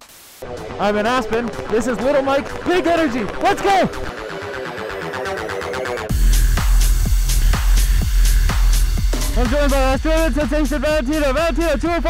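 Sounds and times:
electronic dance music: 0:00.0 - 0:12.0
fast repeating synth notes: 0:00.4 - 0:12.0
heavy bass drop: 0:03.2 - 0:12.0
kick drum: 0:06.1 - 0:11.6.

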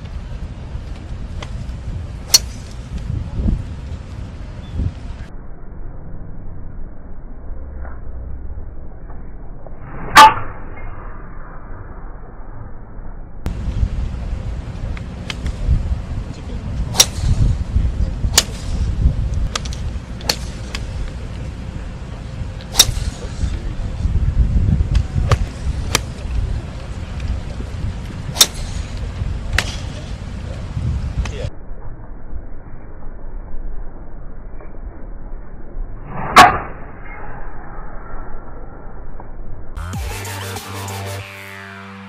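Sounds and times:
wind rumble on microphone: 0:00.0 - 0:39.8
golf club striking ball: 0:02.3 - 0:02.8, 0:16.9 - 0:17.5, 0:18.3 - 0:18.9, 0:19.5 - 0:21.2, 0:22.7 - 0:23.4, 0:28.3 - 0:29.0
golf ball strikes: 0:16.9 - 0:17.5, 0:18.3 - 0:18.9, 0:22.7 - 0:23.4, 0:28.3 - 0:30.0.

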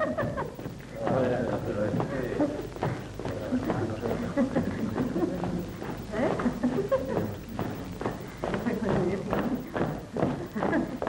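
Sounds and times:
women chattering: 0:00.5 - 0:11.0
faint clicks: 0:01.6 - 0:11.0.

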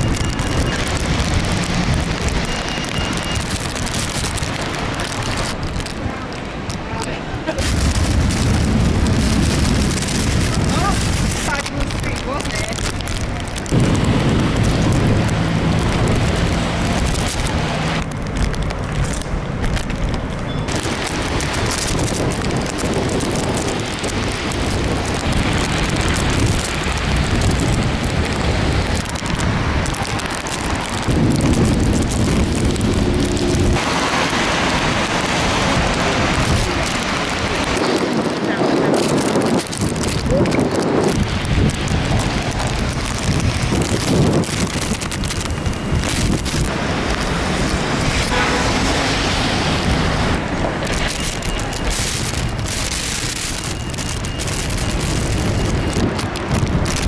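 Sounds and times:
gusty storm wind: 0:00.0 - 0:57.0
rain on wet pavement: 0:00.0 - 0:57.0
wind buffeting microphone: 0:00.0 - 0:57.0.

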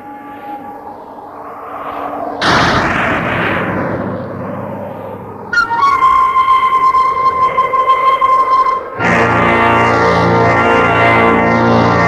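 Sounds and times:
noisy crash-like swell: 0:01.5 - 0:10.6.

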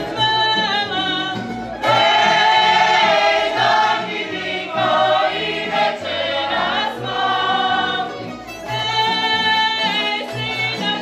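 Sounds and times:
group of voices singing: 0:00.0 - 0:11.0
plucked strings: 0:00.0 - 0:11.0.

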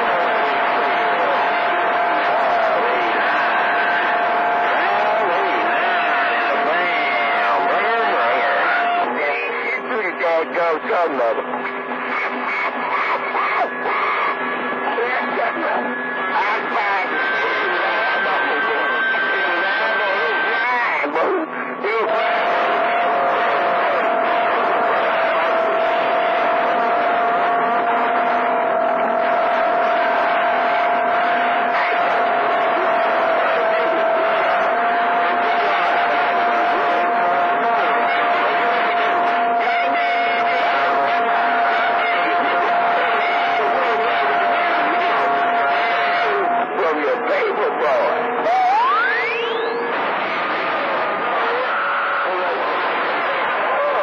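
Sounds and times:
garbled radio voices: 0:00.0 - 0:54.0
loud steady radio whistle: 0:00.0 - 0:54.0
radio carrier whistles: 0:48.4 - 0:54.0.

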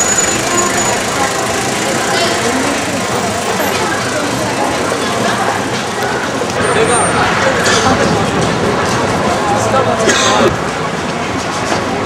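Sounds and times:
indistinct crowd chatter: 0:00.0 - 0:12.0
steady traffic noise: 0:00.0 - 0:12.0.

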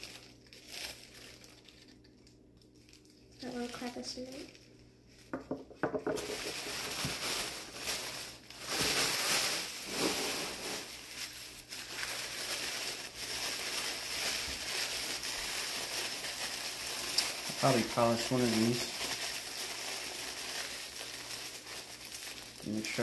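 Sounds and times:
wrapping paper crinkling: 0:00.0 - 0:05.3, 0:06.1 - 0:23.0.

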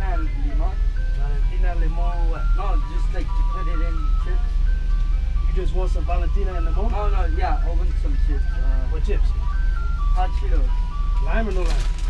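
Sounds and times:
ice cream truck jingle: 0:00.0 - 0:12.0
low steady hum: 0:00.0 - 0:12.0.

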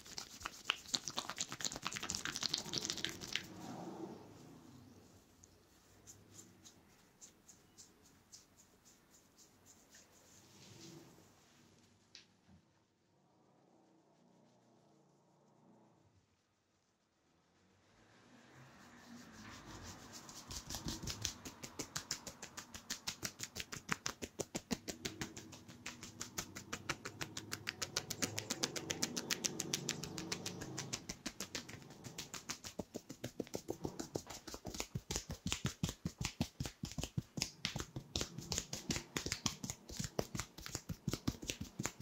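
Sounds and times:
hands tapping on scalp: 0:00.0 - 0:03.5, 0:20.3 - 0:42.0
hair rustling: 0:00.0 - 0:11.6, 0:18.7 - 0:42.0.

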